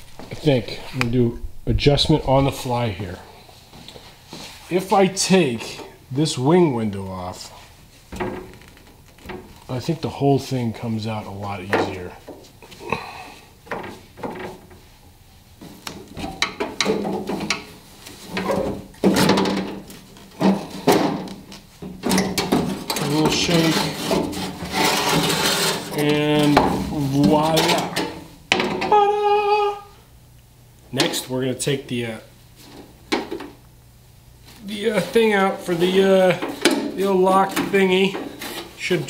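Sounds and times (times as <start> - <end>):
metal rubbing and scraping: 22.5 - 28.3.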